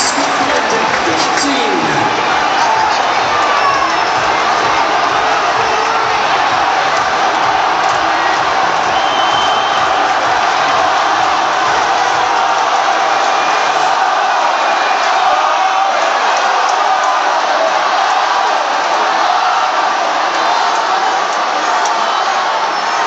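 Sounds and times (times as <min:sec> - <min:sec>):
stadium crowd cheering and shouting: 0:00.0 - 0:23.0.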